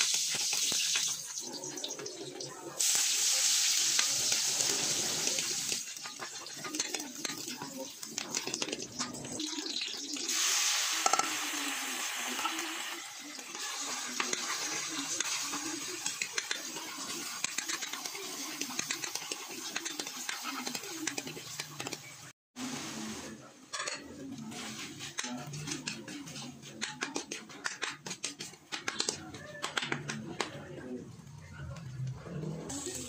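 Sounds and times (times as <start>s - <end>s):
food sizzling in hot oil: 0.0s - 23.1s, 32.7s - 33.0s
spatula scraping a wok: 3.9s - 9.3s, 10.3s - 22.3s, 23.9s - 29.9s.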